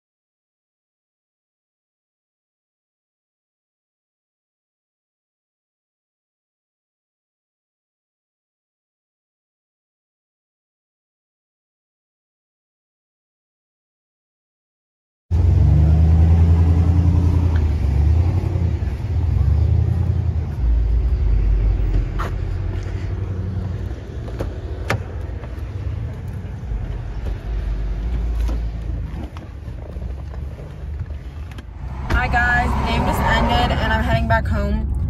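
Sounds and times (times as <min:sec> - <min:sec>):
loud low rumble: 0:31.7 - 0:35.0
woman speaking: 0:31.9 - 0:35.0.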